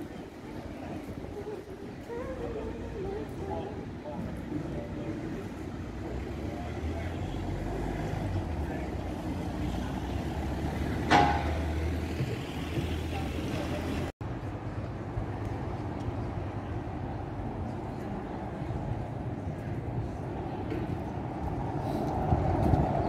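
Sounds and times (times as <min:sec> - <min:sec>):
faint voices of passers-by: 0:00.0 - 0:23.0
low traffic rumble: 0:00.0 - 0:23.0.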